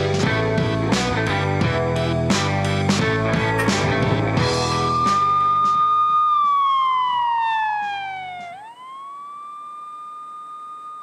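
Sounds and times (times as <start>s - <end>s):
television title music: 3.6s - 5.0s
siren-like electronic tone: 3.6s - 11.0s.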